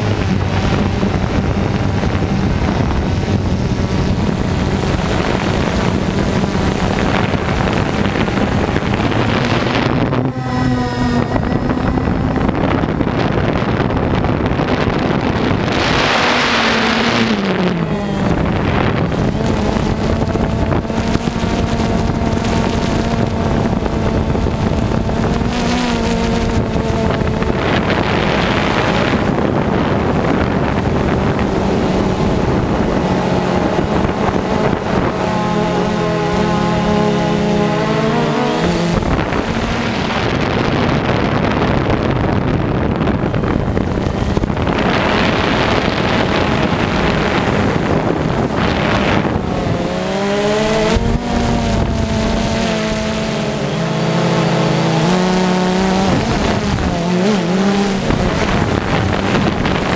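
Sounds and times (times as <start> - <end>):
drone motors humming: 0.0 - 59.9
wind gusts on microphone: 0.0 - 59.9.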